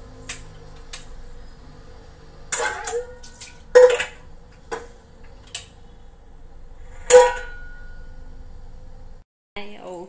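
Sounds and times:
metal utensil clank ringing: 0:02.5 - 0:04.3, 0:06.9 - 0:08.3.

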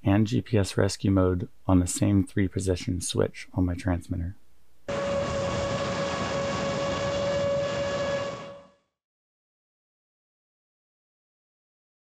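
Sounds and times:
drone motors whining: 0:04.9 - 0:08.6
rushing air noise: 0:04.9 - 0:08.6.

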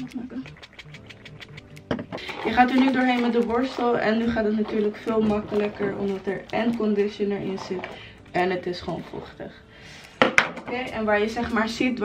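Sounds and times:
music with ticking beat and bass: 0:00.0 - 0:03.2.

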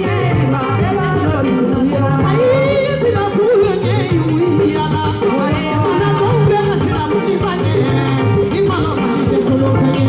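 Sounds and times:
amplified backing music with bass: 0:00.0 - 0:10.0
woman singing into a microphone: 0:00.0 - 0:10.0.

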